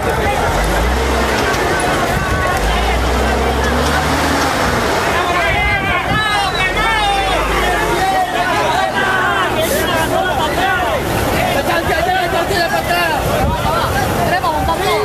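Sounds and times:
crowd shouting and talking: 0.0 - 15.0.

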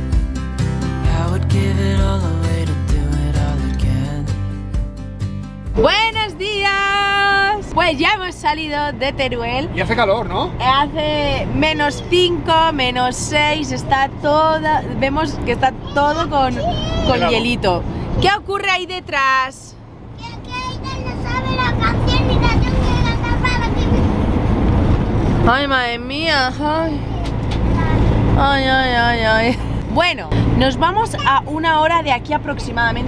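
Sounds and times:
low rumble of moving motorhome: 0.0 - 4.8, 5.6 - 33.0
child calling out: 15.8 - 17.4.

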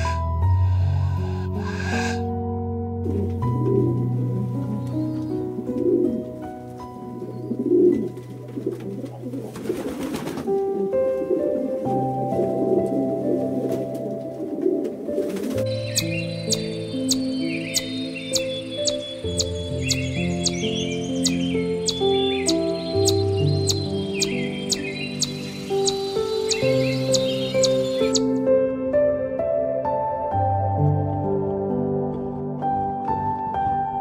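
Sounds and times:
soft slow music: 0.0 - 34.0
dove cooing: 10.8 - 28.2
birds twittering: 15.6 - 28.3
high bird chirps: 15.7 - 28.3.

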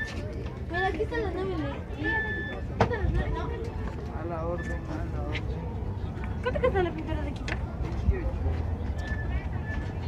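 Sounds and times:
people's voices: 0.0 - 10.0
street bustle rumble: 0.0 - 10.0.

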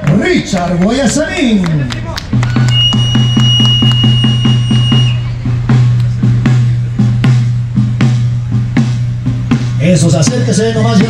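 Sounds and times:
bass drum beaten in rhythm: 2.2 - 11.0.

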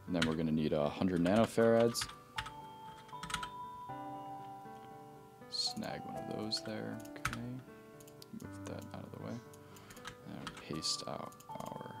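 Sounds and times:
soft background music: 0.0 - 12.0
keyboard keystrokes: 1.1 - 3.6, 9.8 - 11.9.

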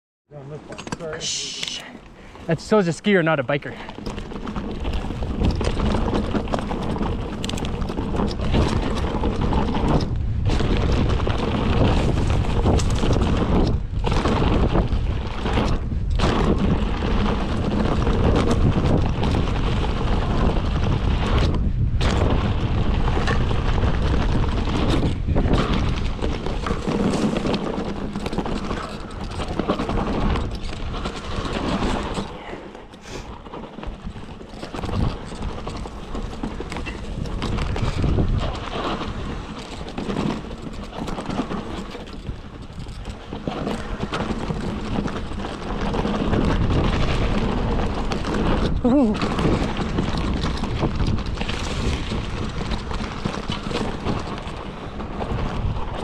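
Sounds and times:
wind buffeting microphone: 0.4 - 56.0
tyres rumbling on dirt and rocks: 2.4 - 56.0.

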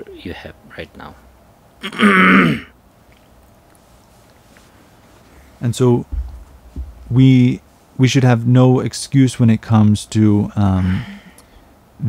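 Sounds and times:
man clearing his throat: 1.8 - 2.7.

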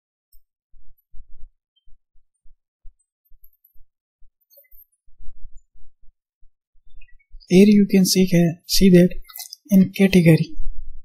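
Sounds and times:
muffled low thumps: 0.3 - 4.4, 5.0 - 7.7, 10.5 - 11.0.

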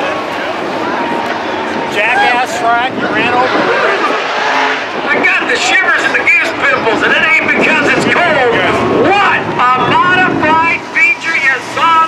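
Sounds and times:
race cars running on track: 0.0 - 12.0
voices: 0.0 - 12.0.

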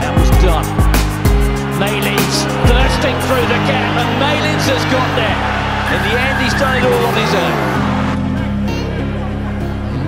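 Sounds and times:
music with deep bass line and beat: 0.0 - 10.0.

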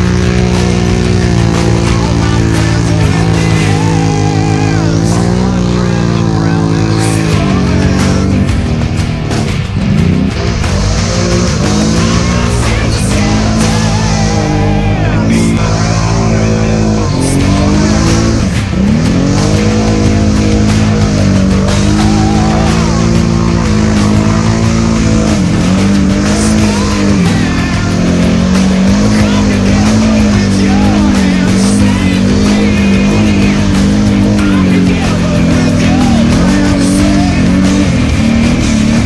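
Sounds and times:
atv engines revving in mud: 0.0 - 39.0
rock music: 0.0 - 39.0.

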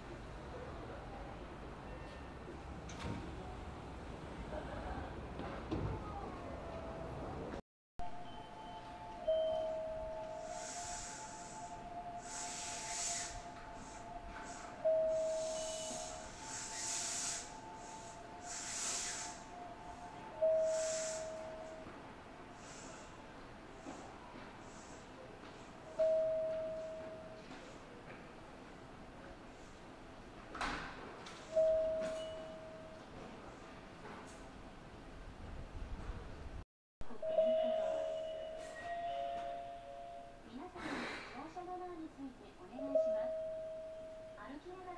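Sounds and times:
ringing tones: 8.0 - 22.5, 31.5 - 33.0, 37.1 - 40.5, 42.8 - 44.8
air hissing bursts: 10.4 - 21.5.

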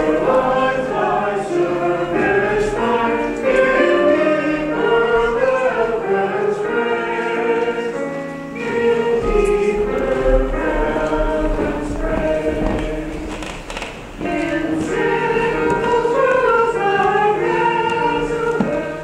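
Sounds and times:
choir singing long notes: 0.0 - 19.0.

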